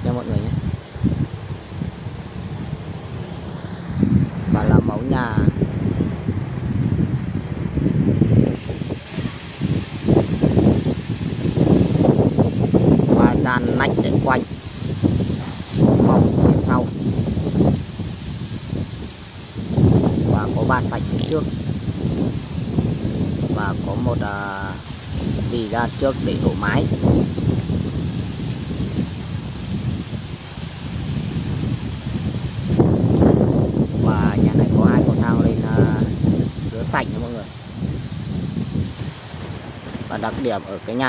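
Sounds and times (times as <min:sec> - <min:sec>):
person speaking: 0:00.0 - 0:00.7, 0:04.4 - 0:05.7, 0:13.1 - 0:14.5, 0:15.8 - 0:17.0, 0:20.3 - 0:21.6, 0:23.5 - 0:26.9, 0:34.0 - 0:37.6, 0:40.1 - 0:41.0
wind buffeting microphone: 0:00.0 - 0:41.0.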